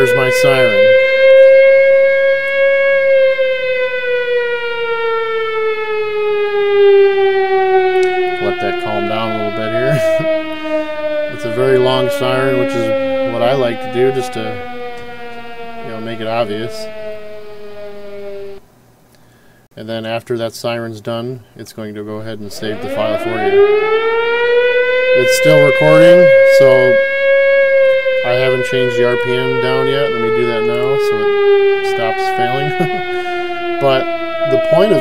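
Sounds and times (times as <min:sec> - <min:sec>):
siren wail: 0:00.0 - 0:18.7, 0:22.2 - 0:35.0.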